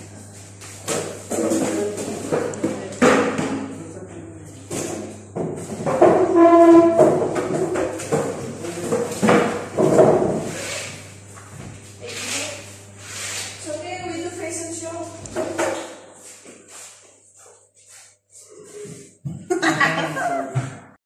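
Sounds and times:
furniture scraping on floor: 0:04.8 - 0:14.2.

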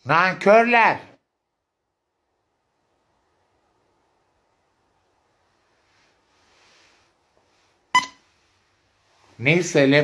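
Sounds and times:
faint soft rustle: 0:04.8 - 0:10.0
short electronic beep: 0:08.0 - 0:08.2.

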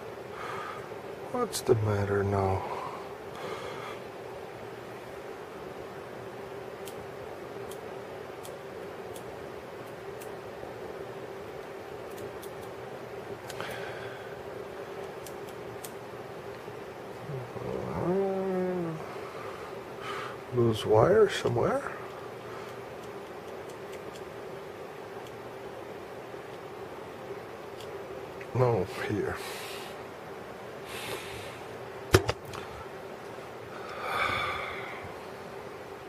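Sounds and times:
faint steady hum: 0:00.0 - 0:36.0
sharp clicks of wire clips: 0:06.8 - 0:07.0, 0:08.4 - 0:10.4, 0:12.1 - 0:12.8, 0:15.0 - 0:16.0
man humming: 0:17.2 - 0:19.2.

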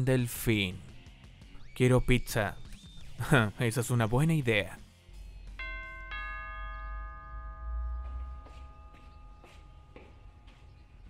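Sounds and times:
two-note doorbell chime: 0:05.6 - 0:10.7.

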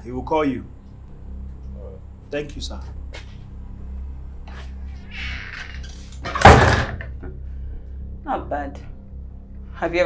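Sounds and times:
wooden door closing with thud: 0:06.3 - 0:07.1.

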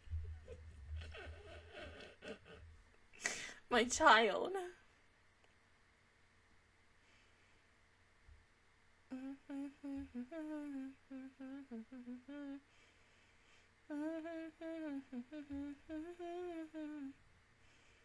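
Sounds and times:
woman humming a tune: 0:09.1 - 0:12.6, 0:13.9 - 0:17.2.

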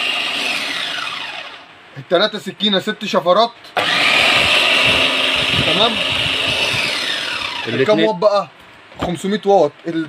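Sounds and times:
electric food chopper motor whine: 0:00.0 - 0:01.7, 0:03.8 - 0:08.0.

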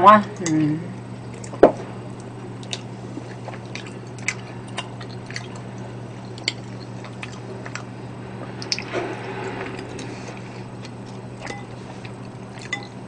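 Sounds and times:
wet chewing and mouth clicks: 0:02.2 - 0:07.9, 0:10.8 - 0:13.0
low hum: 0:03.9 - 0:13.0.

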